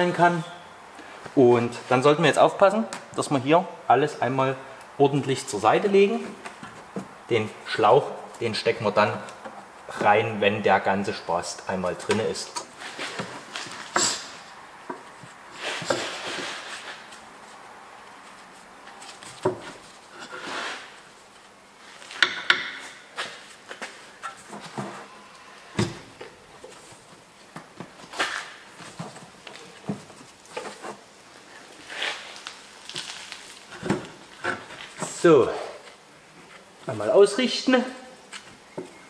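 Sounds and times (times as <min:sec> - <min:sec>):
rubbing and rustling: 0:12.0 - 0:25.2, 0:25.8 - 0:36.9.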